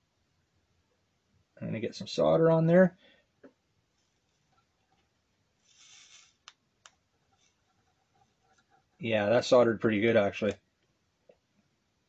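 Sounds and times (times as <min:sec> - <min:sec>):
faint brief hiss: 0:05.6 - 0:06.5
faint clicks: 0:06.0 - 0:08.8.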